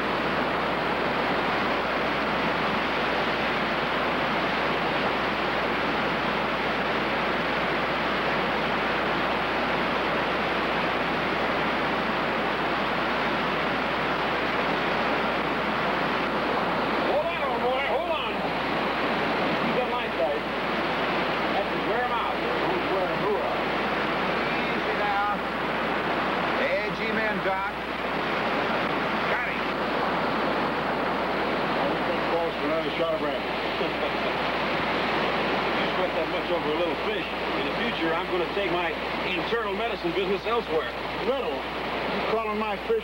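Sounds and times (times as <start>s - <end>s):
water rushing over rocks: 0.0s - 43.0s.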